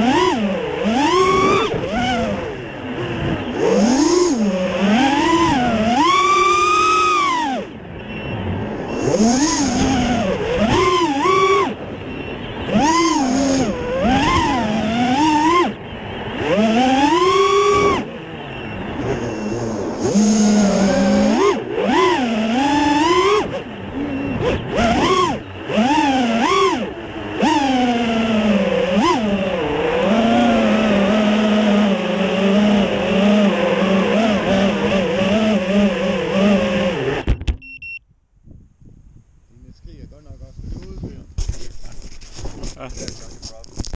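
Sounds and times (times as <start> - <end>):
quadcopter motors whining: 0.0 - 37.4.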